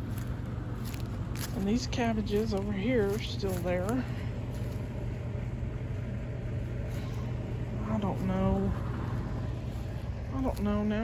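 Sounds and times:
low rumble with hum: 0:00.0 - 0:11.0.

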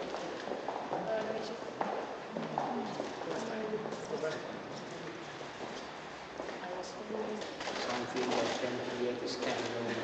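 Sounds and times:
murmur of voices in hall: 0:00.0 - 0:10.0.

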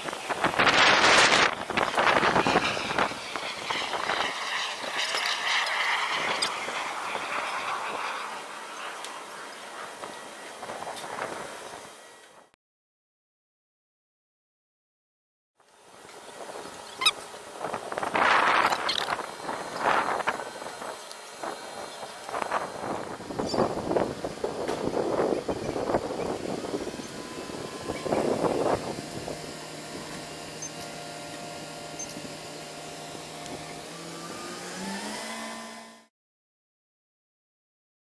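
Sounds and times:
crane engine humming: 0:15.7 - 0:36.1.

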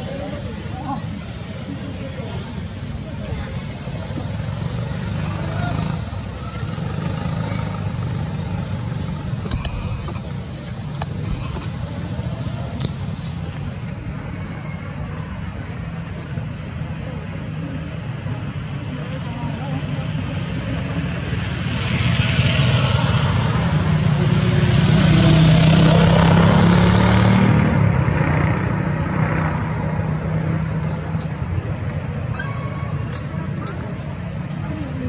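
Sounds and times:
low outdoor rumble: 0:00.0 - 0:26.8
faint indistinct voices: 0:00.0 - 0:35.0.

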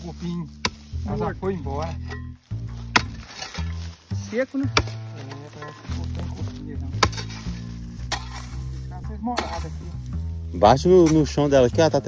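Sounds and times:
background music with low bass: 0:00.0 - 0:12.0
hoe striking hard earth: 0:00.2 - 0:09.9.

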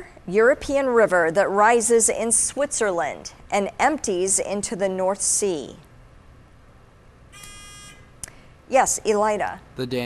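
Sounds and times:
quiz show buzzer: 0:07.3 - 0:08.1.

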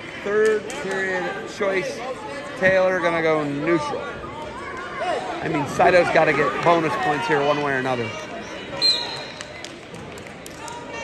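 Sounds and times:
murmur of spectator chatter: 0:00.0 - 0:11.0
referee's whistle blast: 0:08.8 - 0:09.4.

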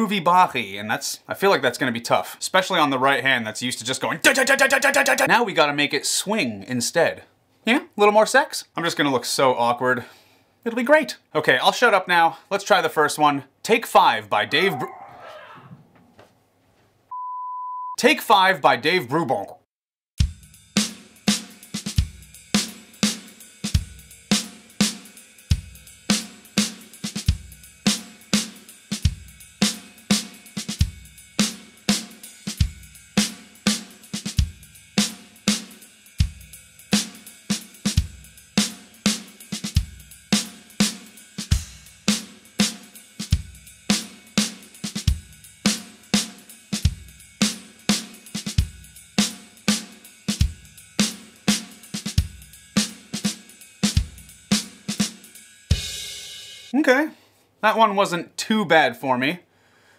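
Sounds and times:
jazz drum kit groove: 0:04.2 - 0:05.3, 0:20.2 - 0:56.8.

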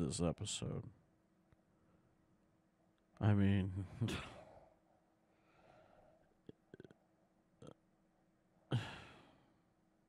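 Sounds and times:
faint breath: 0:04.2 - 0:06.4
man sighing: 0:08.7 - 0:09.4.

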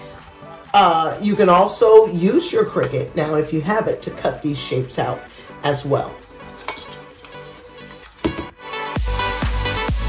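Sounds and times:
faint background music: 0:00.0 - 0:08.7
metal tray scraping: 0:06.3 - 0:08.6.

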